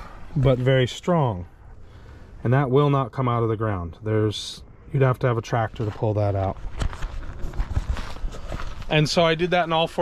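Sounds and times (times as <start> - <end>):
camera handling rumble: 6.6 - 8.9.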